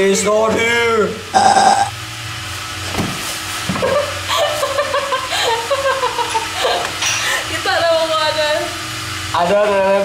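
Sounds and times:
low background hum: 0:00.0 - 0:10.0
young man laughing nervously: 0:03.8 - 0:07.0.

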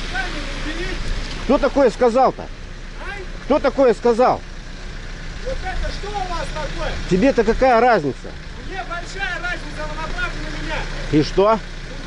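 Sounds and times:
diesel engine rumbling: 0:00.0 - 0:12.0.

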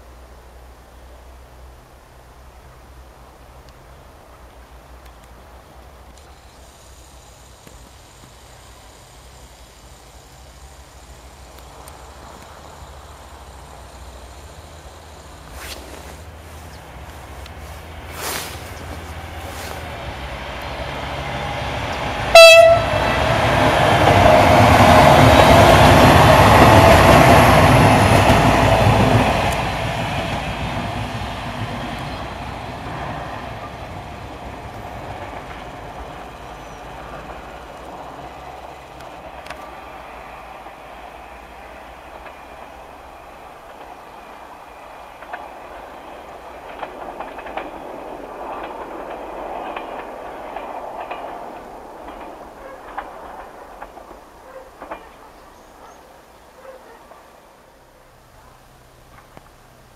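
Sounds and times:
train passing on rails: 0:00.0 - 0:59.9
train horn blast: 0:22.3 - 0:23.2.

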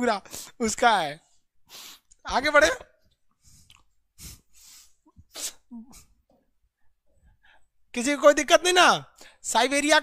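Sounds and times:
man sneezing: 0:05.1 - 0:06.2.

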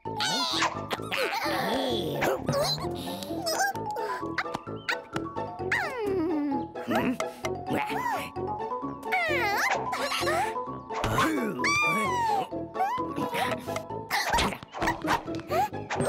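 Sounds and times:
cartoon background music: 0:00.0 - 0:16.0
wordless cartoon vocal sounds: 0:00.1 - 0:04.2, 0:05.7 - 0:08.4, 0:09.0 - 0:14.6.

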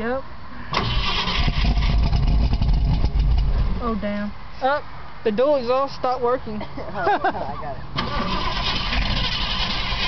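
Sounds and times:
car engine exhaust rumble: 0:00.7 - 0:04.3.

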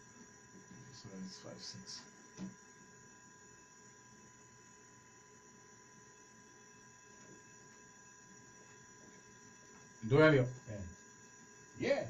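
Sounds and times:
faint high-pitched electrical whine: 0:00.0 - 0:12.0.

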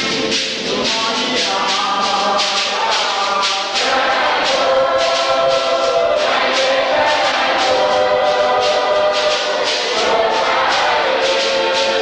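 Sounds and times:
group singing church song: 0:00.0 - 0:12.0
shaken hand percussion: 0:00.0 - 0:12.0.

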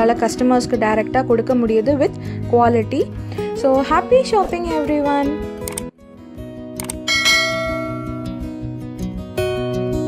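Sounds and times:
soft background music: 0:00.0 - 0:10.0
bright bell chime: 0:07.1 - 0:08.5.

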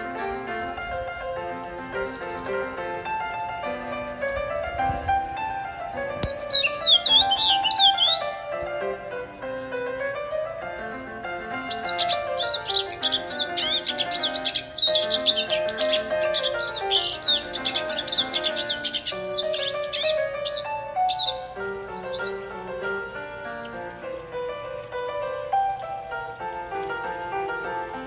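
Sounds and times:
background music: 0:00.0 - 0:28.0
birds chirping: 0:00.0 - 0:28.0.

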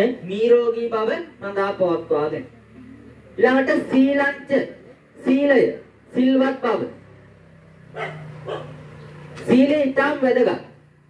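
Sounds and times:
dog barking: 0:07.9 - 0:08.9.

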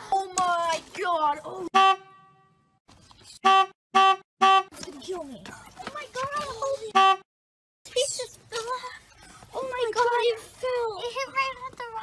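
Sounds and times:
vehicle horn honks: 0:01.8 - 0:02.8, 0:03.4 - 0:04.8, 0:06.9 - 0:07.2.

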